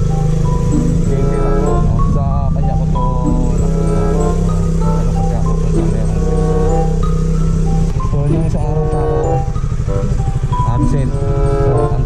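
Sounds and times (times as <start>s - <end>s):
background music: 0.0s - 12.0s
motorcycle engine running: 0.0s - 12.0s
person speaking: 0.7s - 7.0s, 7.9s - 12.0s.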